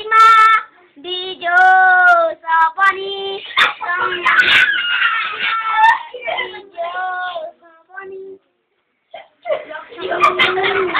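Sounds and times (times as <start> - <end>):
young child singing: 0.0 - 8.6, 10.0 - 10.9.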